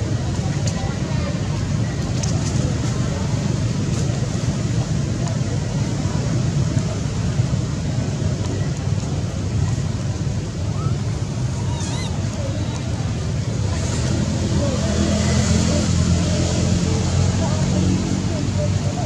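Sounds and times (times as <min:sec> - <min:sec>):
low rumbling background noise: 0:00.0 - 0:19.0.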